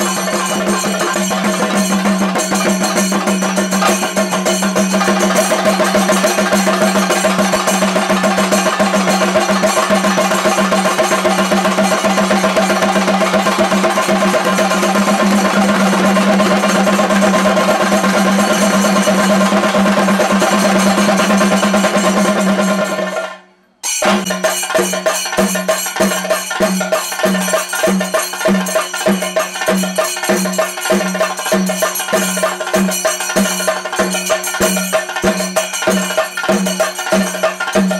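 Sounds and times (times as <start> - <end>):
fast dense drumming: 0.0 - 23.2.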